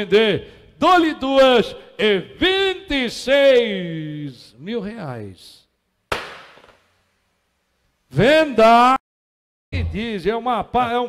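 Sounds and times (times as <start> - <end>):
gavel knock: 6.1 - 6.8.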